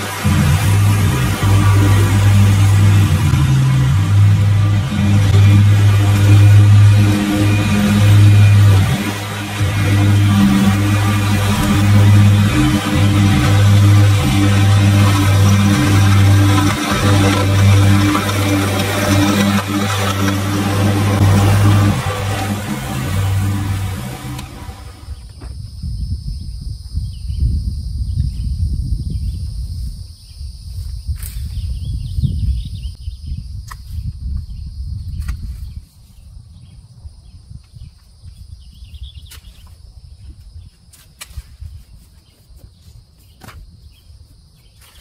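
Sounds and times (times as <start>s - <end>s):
background music with bass line: 0.0s - 25.2s
riding mower engine running: 0.0s - 25.3s.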